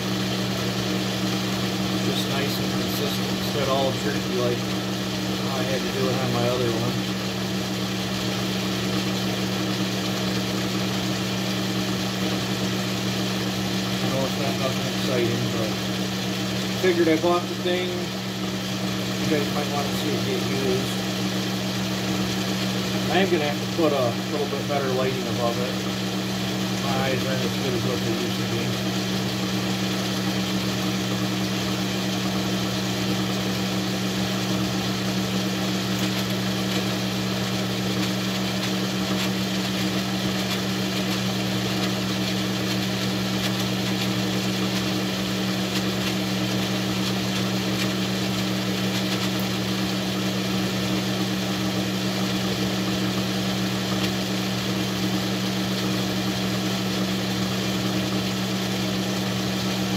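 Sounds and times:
metal lathe motor humming: 0:00.0 - 0:59.9.

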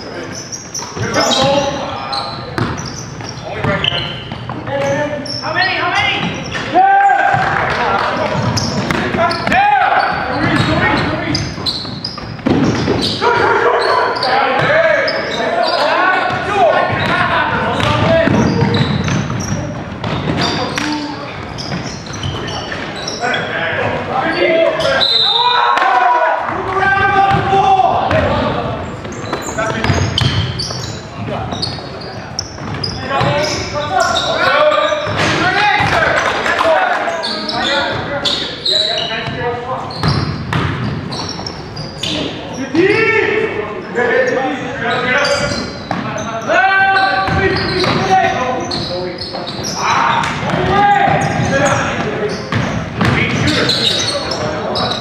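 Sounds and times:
players' voices: 0:00.0 - 0:55.0
sneakers squeaking: 0:00.0 - 0:55.0
players shouting: 0:05.1 - 0:11.5, 0:12.6 - 0:21.4, 0:22.2 - 0:31.5
basketball bouncing on hardwood: 0:40.0 - 0:41.0, 0:52.5 - 0:53.4.

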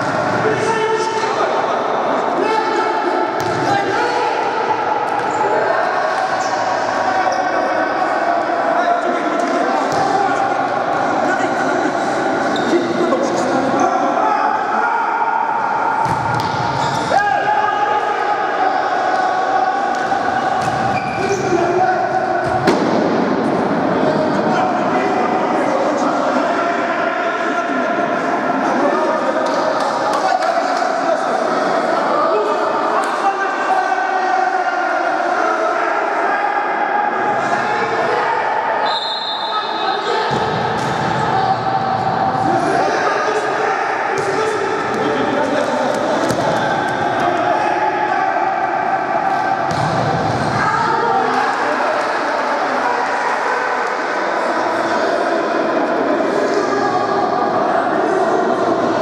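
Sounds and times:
players' voices echoing: 0:00.0 - 0:59.0.

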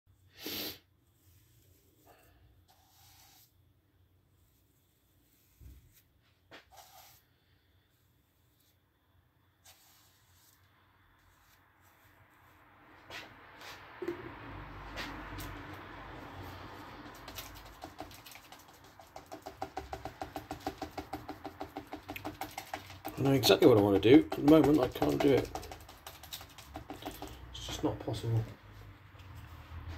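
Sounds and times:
brush scrubbing paint on paper: 0:00.6 - 0:08.9, 0:09.6 - 0:14.0, 0:14.8 - 0:29.9.

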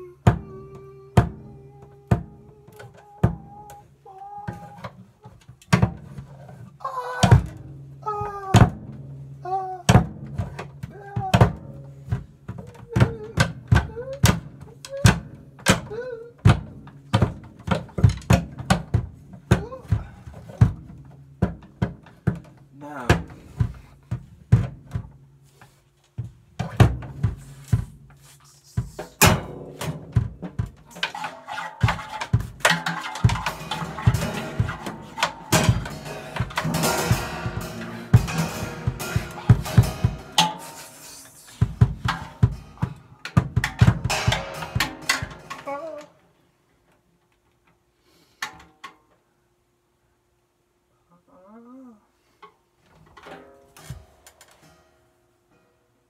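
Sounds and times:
drum strikes: 0:28.8 - 0:46.0
cymbals ringing: 0:33.3 - 0:42.8, 0:44.1 - 0:45.7.

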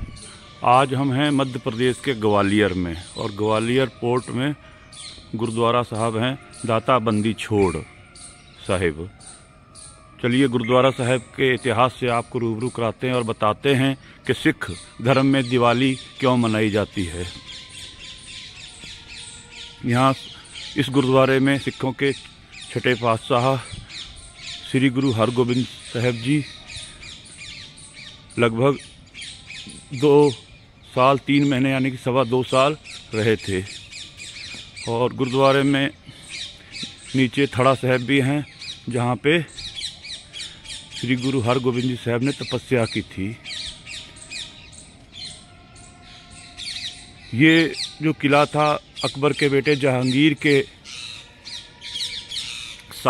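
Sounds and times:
birds chirping: 0:00.0 - 0:53.0
faint open-air background: 0:00.0 - 0:53.0.

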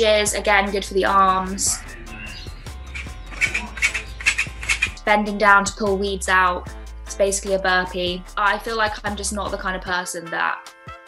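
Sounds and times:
background music: 0:00.0 - 0:11.0
hedge shears snipping: 0:03.0 - 0:05.0.

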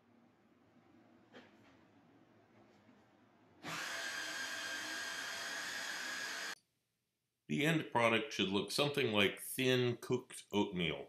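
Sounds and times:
food processor motor whining: 0:03.6 - 0:06.6
blade grinding thick batter: 0:03.7 - 0:06.6.

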